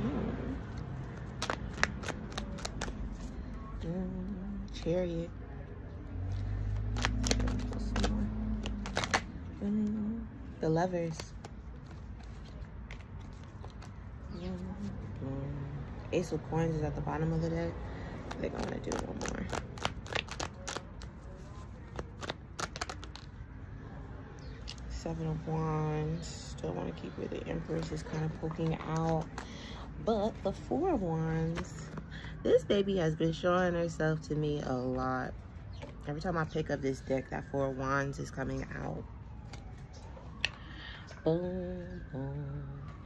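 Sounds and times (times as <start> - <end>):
tarot cards being shuffled: 0.4 - 3.5, 6.2 - 9.3, 11.0 - 15.2, 18.2 - 23.4, 27.6 - 29.7.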